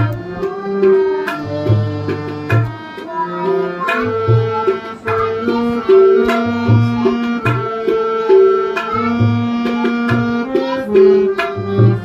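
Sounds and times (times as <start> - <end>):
tabla treble drum strokes: 0.0 - 12.0.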